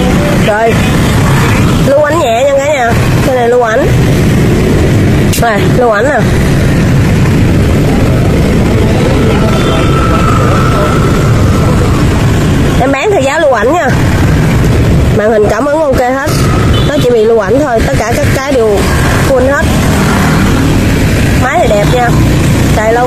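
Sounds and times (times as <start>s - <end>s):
loud low rumble: 0.0s - 23.0s
person speaking: 5.3s - 6.4s.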